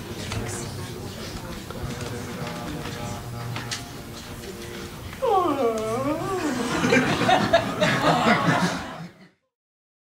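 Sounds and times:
person moaning: 5.2 - 6.9.

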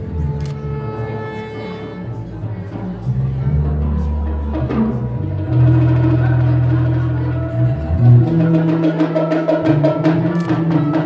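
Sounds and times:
bass: 0.0 - 11.0
percussion: 0.0 - 11.0
saxophone: 0.0 - 11.0.

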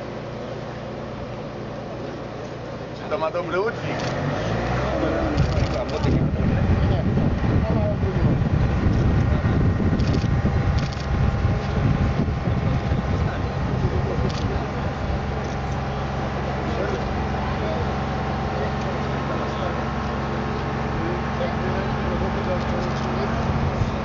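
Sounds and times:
engine low drone: 0.0 - 24.0
wind rumbling on microphone: 5.2 - 16.2, 22.8 - 24.0.

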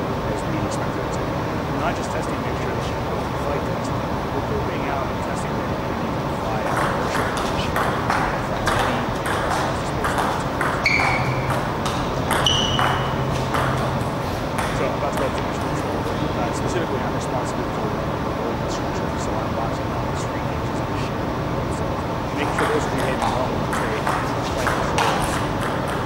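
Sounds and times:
ping pong ball clicking: 6.7 - 14.0
high-pitched squeaks: 10.6 - 11.6, 12.2 - 14.0.

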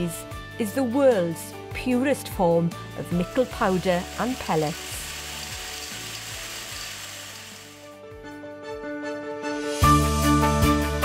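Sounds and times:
background music: 0.0 - 11.0
pellets rattling into steel drum: 3.3 - 7.9.

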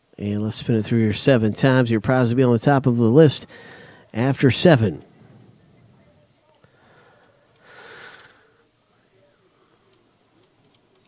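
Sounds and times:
man exhaling: 3.5 - 4.1, 6.8 - 8.6.

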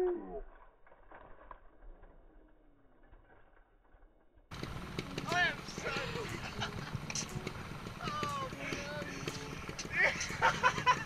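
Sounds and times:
man laughing: 5.8 - 7.2, 8.0 - 11.0.

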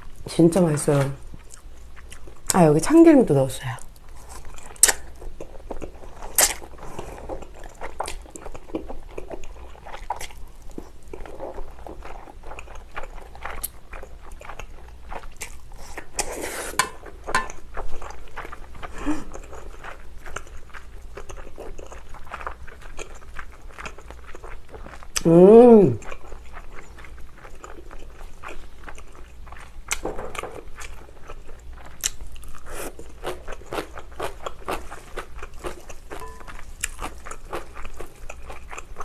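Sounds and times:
chewing with wet smacks: 1.2 - 2.7, 3.8 - 16.3, 17.0 - 25.3, 25.9 - 39.0.

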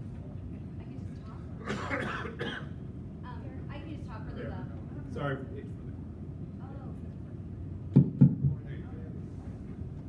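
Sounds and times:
low room hum: 0.0 - 10.0
person coughing: 1.6 - 2.8.

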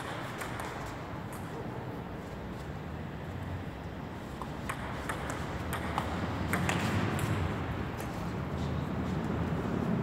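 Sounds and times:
table tennis ball clicking: 4.6 - 7.5.

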